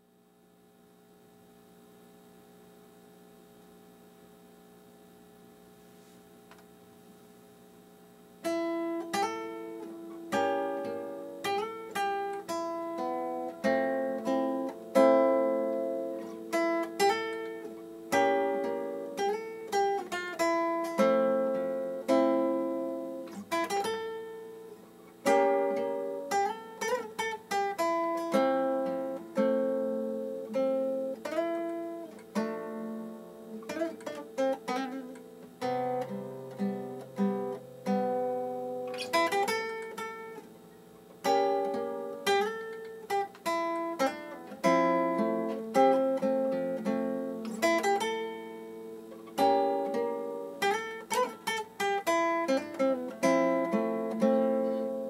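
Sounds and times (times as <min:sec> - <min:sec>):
fingerstyle nylon-string guitar: 0:05.3 - 0:55.0.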